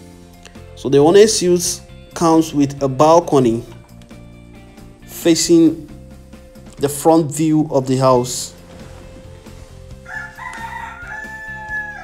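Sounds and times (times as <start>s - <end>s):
rooster crowing: 10.0s - 12.0s.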